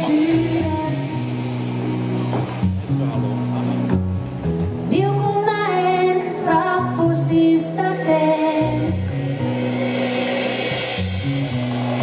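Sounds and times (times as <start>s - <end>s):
bass guitar: 0.0s - 12.0s
live pop band instrumental: 0.0s - 12.0s.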